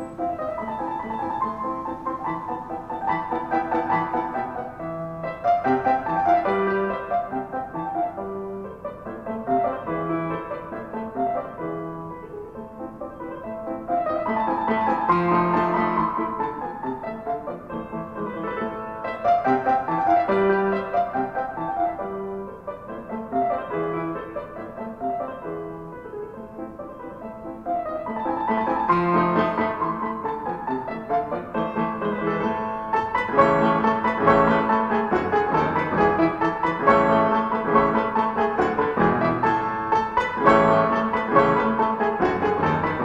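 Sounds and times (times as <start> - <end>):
slow classical piano music: 0.0 - 43.0.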